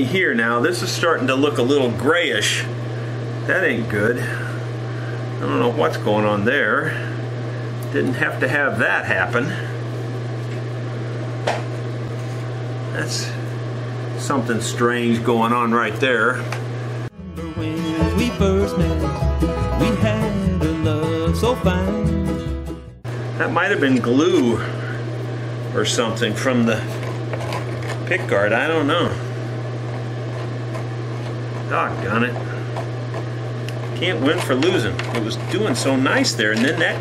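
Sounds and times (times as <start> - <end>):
machine hum: 0.0 - 37.0
person speaking: 31.5 - 33.0, 33.7 - 37.0.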